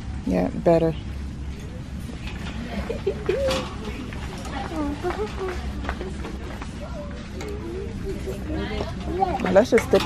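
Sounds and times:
shopping cart rolling: 0:02.1 - 0:10.0.

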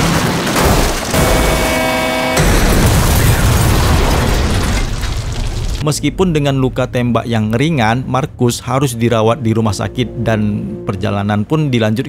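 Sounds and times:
dramatic music chords: 0:01.1 - 0:03.2, 0:05.8 - 0:12.0
car crashing down rocks: 0:02.4 - 0:05.8.

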